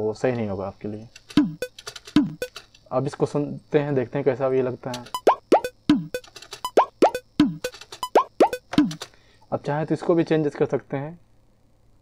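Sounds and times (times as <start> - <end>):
kick drum: 1.4 - 2.4, 5.2 - 6.2, 7.0 - 9.0.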